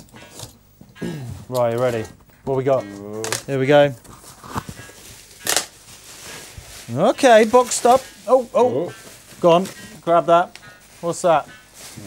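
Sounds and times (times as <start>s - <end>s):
bubble wrap rustling and crinkling: 3.1s - 12.0s.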